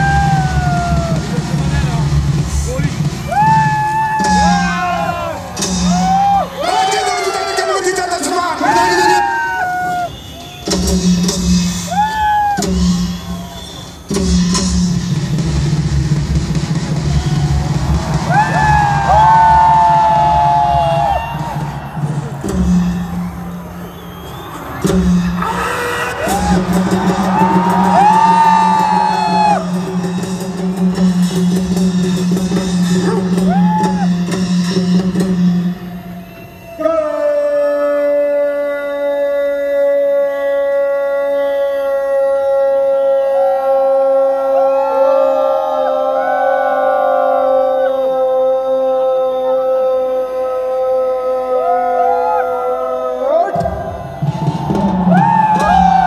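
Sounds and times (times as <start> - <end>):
long drawn-out shout: 0.0 - 1.4, 3.2 - 10.7, 11.8 - 14.0, 17.0 - 30.4, 33.0 - 34.4, 39.9 - 56.0
crowd whooping: 0.0 - 14.6, 15.8 - 39.2, 40.3 - 56.0
crowd cheering: 0.0 - 38.2, 41.7 - 56.0
music over loudspeakers: 0.0 - 45.8, 46.6 - 56.0.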